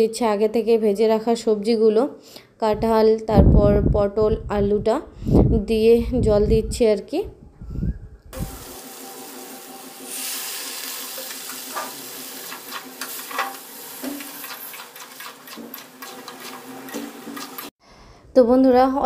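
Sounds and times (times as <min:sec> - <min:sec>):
curry hissing and sizzling: 0:08.4 - 0:17.8
metal spatula scraping pan: 0:10.1 - 0:17.7.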